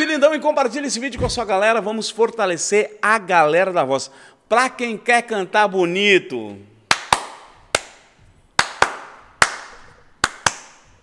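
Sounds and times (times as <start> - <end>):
hand claps: 6.9 - 11.0.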